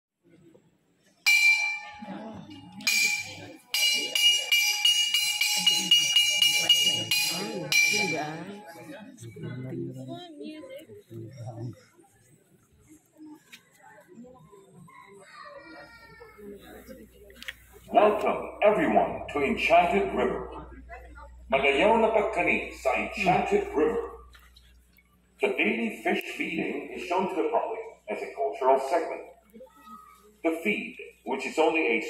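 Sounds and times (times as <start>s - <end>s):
faint background voices: 0.2s - 28.2s
metallic percussion hit with ring: 1.3s - 9.0s.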